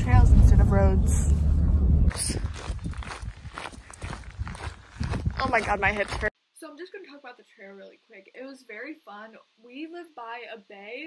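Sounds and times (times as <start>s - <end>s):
footsteps on gravel: 2.0s - 6.3s.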